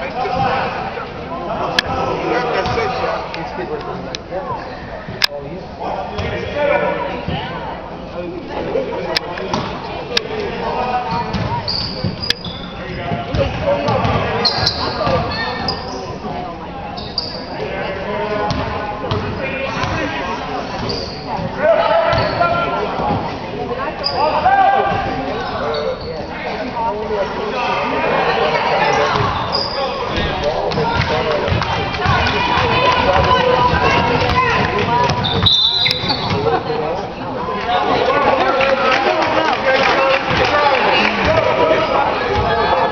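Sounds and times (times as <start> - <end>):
spectators' voices: 0.0 - 42.9
shoes squeaking on court: 11.2 - 16.2, 17.0 - 17.6, 20.6 - 21.5, 22.1 - 22.5, 25.4 - 26.3, 28.9 - 31.1, 33.2 - 36.7
basketball bouncing: 11.3 - 12.2, 15.0 - 15.3
referee's whistle blast: 35.2 - 36.3.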